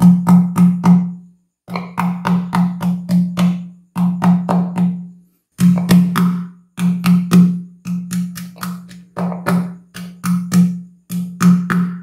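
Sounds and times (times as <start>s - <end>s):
pestle pounding in wooden mortar: 0.0s - 1.1s, 1.7s - 12.0s.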